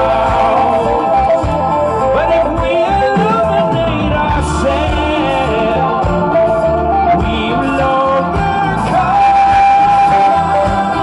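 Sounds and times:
funk band playing: 0:00.0 - 0:11.0.

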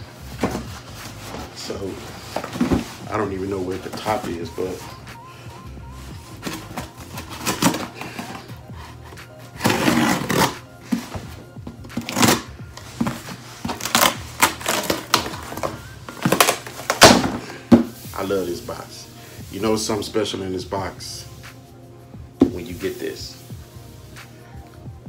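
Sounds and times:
paper packaging tearing: 0:06.4 - 0:08.5, 0:09.6 - 0:10.6, 0:12.0 - 0:12.5, 0:13.7 - 0:17.2
knife cutting packing tape: 0:06.4 - 0:10.6, 0:12.0 - 0:17.3.

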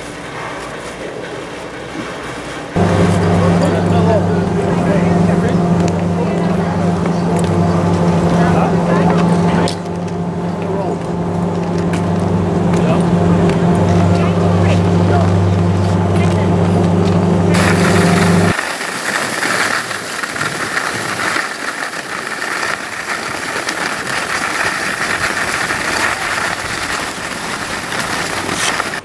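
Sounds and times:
low mechanical hum: 0:00.1 - 0:18.6
steady rushing noise: 0:00.8 - 0:29.0.

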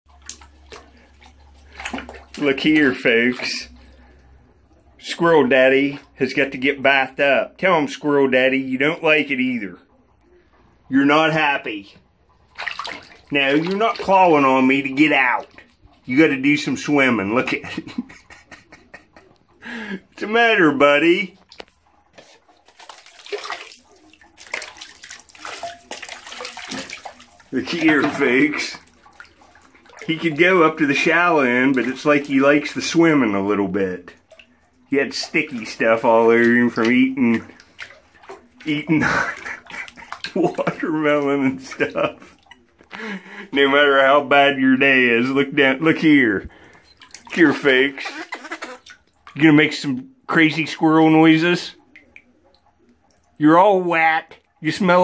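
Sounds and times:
small water splashes: 0:00.1 - 0:06.6, 0:11.4 - 0:53.5.

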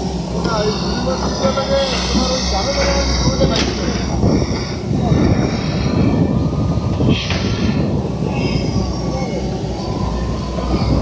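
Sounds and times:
excavator diesel engines running: 0:00.0 - 0:11.0.

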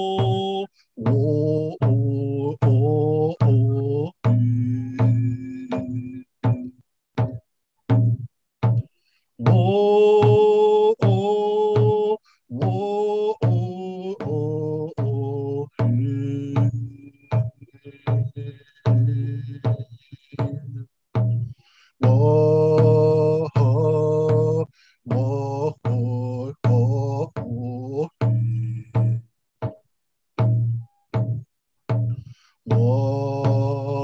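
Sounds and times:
man chanting: 0:00.0 - 0:06.6, 0:09.4 - 0:20.9, 0:22.0 - 0:29.2, 0:32.7 - 0:34.0
man singing long held notes: 0:00.0 - 0:06.7, 0:09.4 - 0:20.9, 0:21.9 - 0:29.2, 0:32.6 - 0:34.0
hand drum beating: 0:00.0 - 0:34.0.

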